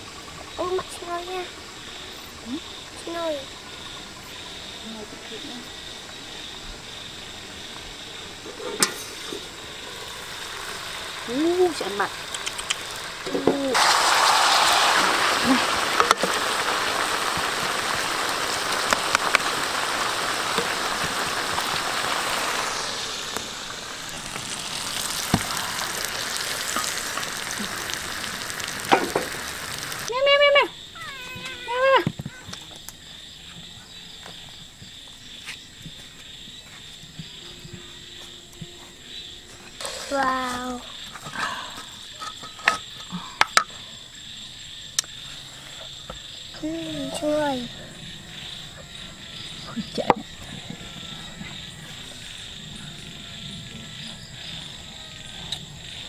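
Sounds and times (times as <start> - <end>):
fish sizzling in a wok: 0.0 - 30.2, 39.0 - 56.0.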